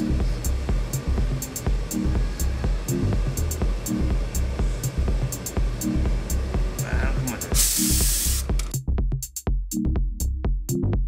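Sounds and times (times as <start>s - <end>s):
music with steady beat: 0.0s - 11.0s
steam iron hissing: 7.2s - 8.7s.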